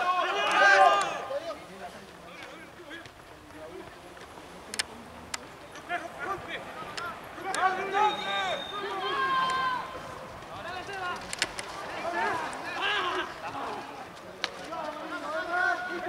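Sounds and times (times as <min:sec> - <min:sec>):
men shouting calls: 0:00.0 - 0:03.9, 0:05.7 - 0:16.0
sharp clicks: 0:04.7 - 0:05.5, 0:10.9 - 0:11.7.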